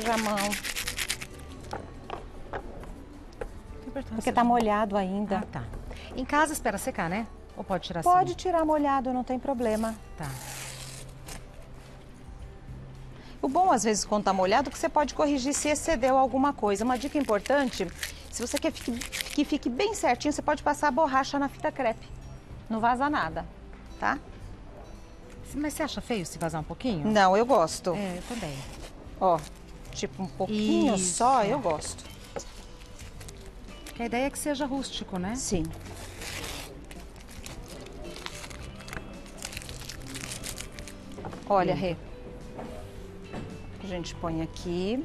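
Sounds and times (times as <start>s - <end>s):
masking tape peeling off: 0.0s - 1.4s, 9.8s - 11.5s, 17.0s - 19.5s, 35.6s - 41.1s.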